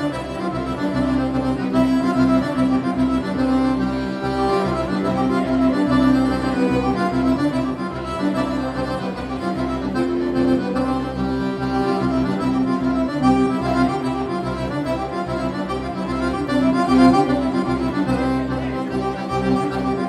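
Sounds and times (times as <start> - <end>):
accordion dance tune: 0.0 - 20.0.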